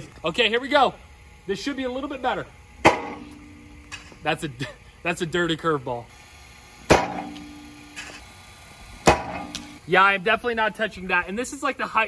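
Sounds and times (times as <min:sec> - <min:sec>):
steady buzzing tone: 0:00.4 - 0:12.0
pitching machine wheels humming: 0:06.0 - 0:10.0
sharp crack: 0:06.9 - 0:08.1, 0:09.0 - 0:09.8.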